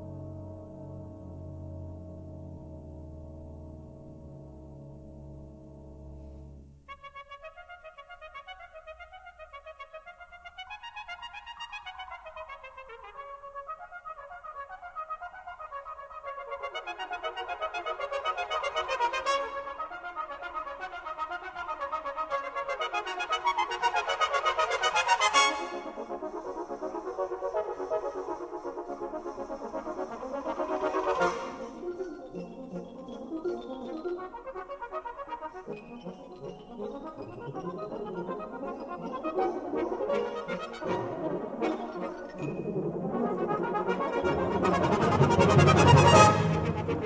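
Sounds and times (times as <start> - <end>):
brass band playing: 16.4 - 33.0, 34.9 - 47.0.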